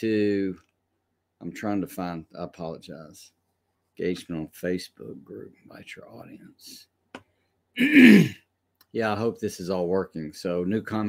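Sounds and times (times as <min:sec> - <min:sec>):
man clearing his throat: 0:07.8 - 0:08.4.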